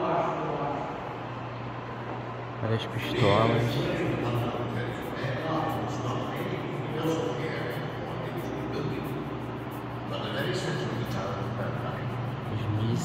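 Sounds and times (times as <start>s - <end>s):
indistinct background talk: 0.0s - 13.0s
steady low hum: 0.0s - 13.0s.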